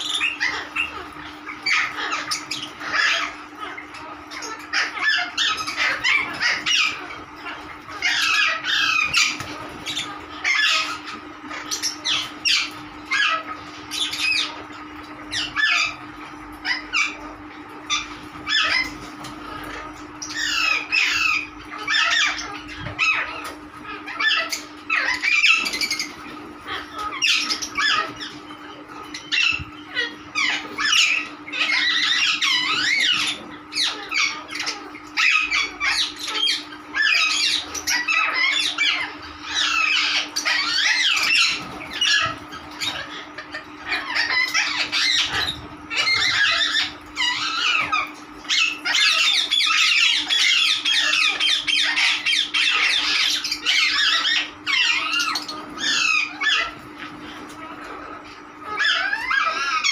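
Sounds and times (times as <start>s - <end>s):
parrots squawking and chattering: 0.0s - 59.9s.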